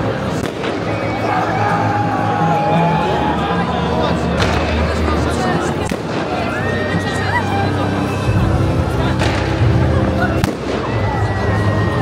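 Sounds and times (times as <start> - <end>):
outdoor crowd noise: 0.0 - 12.0
fireworks bangs: 10.4 - 11.0.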